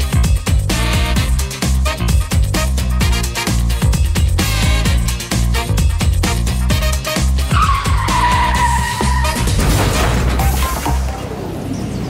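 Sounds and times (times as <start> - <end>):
dance music with steady beat: 0.0 - 8.6
tyre screech: 7.5 - 10.7.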